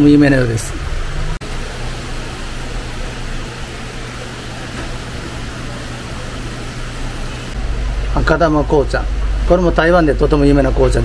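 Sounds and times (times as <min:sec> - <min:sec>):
steady background hum and hiss: 0:00.0 - 0:11.0.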